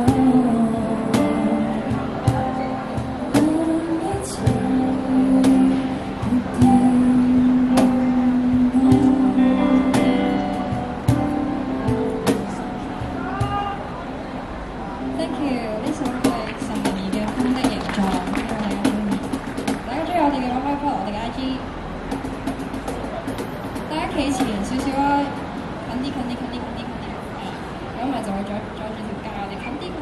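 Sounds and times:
woman singing: 0:00.0 - 0:10.9
acoustic guitar: 0:00.0 - 0:20.7
keyboard: 0:00.0 - 0:20.7
cajon hits: 0:09.9 - 0:13.8, 0:15.9 - 0:20.0, 0:22.1 - 0:25.5.

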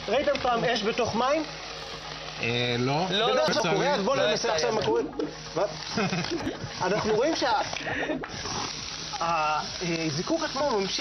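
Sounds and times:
sparkler hissing: 0:00.0 - 0:11.0.

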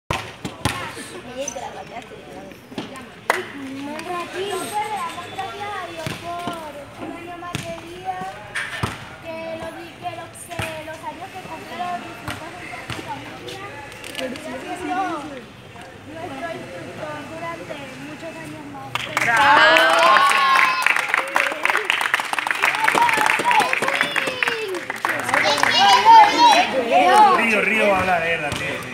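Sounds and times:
children talking: 0:02.7 - 0:08.5, 0:09.2 - 0:15.4, 0:22.6 - 0:27.6.

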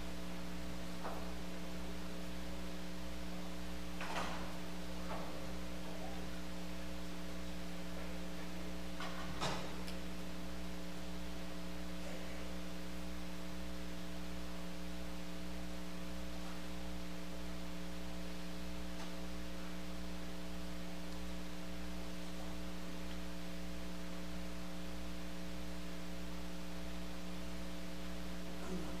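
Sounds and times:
electrical mains hum: 0:00.0 - 0:29.0.

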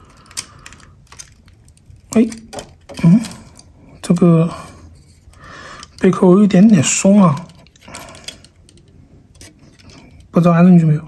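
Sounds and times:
plastic parts clicking: 0:00.0 - 0:03.7, 0:05.1 - 0:10.4.

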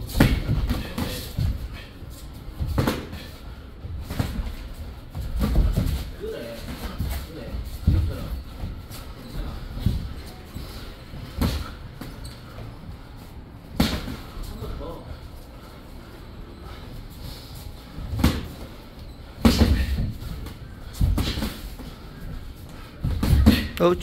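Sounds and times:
boxing gloves hitting: 0:00.0 - 0:01.7, 0:02.6 - 0:03.3, 0:03.9 - 0:07.2, 0:11.3 - 0:12.2, 0:13.8 - 0:14.3, 0:18.1 - 0:18.6, 0:19.4 - 0:21.8, 0:23.0 - 0:23.8
movement in boxing ring: 0:00.0 - 0:24.0.

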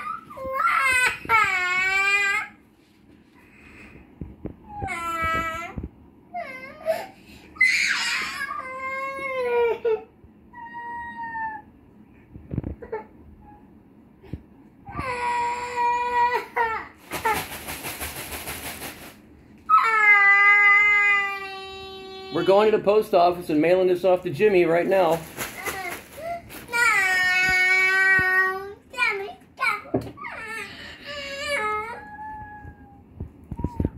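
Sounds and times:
young child crying: 0:06.4 - 0:11.7, 0:14.9 - 0:17.0, 0:30.0 - 0:33.0
girl crying: 0:14.9 - 0:17.0, 0:30.2 - 0:33.0.

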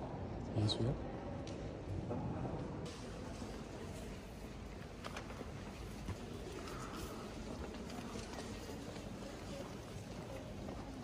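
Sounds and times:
quiet church interior hum: 0:00.0 - 0:11.0.

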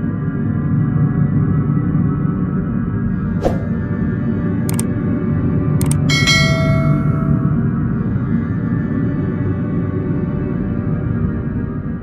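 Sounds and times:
dark ambient music drone: 0:05.4 - 0:12.0
double mouse click: 0:05.8 - 0:06.1
bright bell chime: 0:06.1 - 0:07.7.

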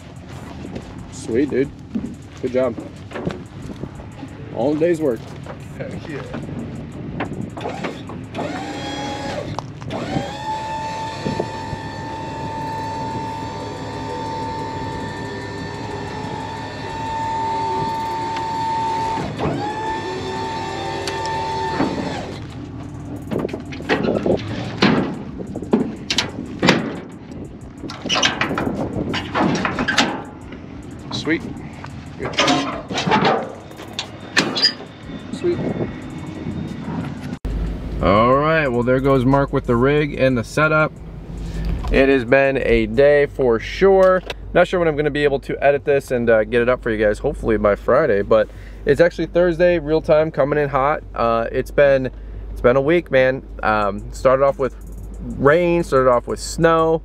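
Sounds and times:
hydraulic pump whining: 0:06.4 - 0:38.0
metal clanks and rattles of chains: 0:22.8 - 0:35.4.

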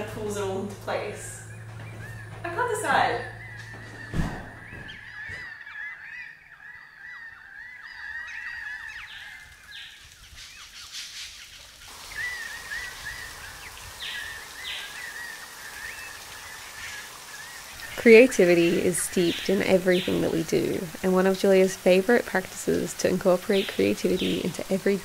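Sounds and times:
soft outdoor hiss: 0:00.0 - 0:03.8, 0:07.9 - 0:25.0
high wild animal calls: 0:01.4 - 0:09.7.

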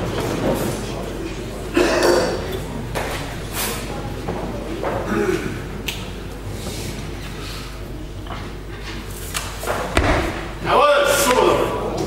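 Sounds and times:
thud on wooden platform: 0:09.9 - 0:10.5.

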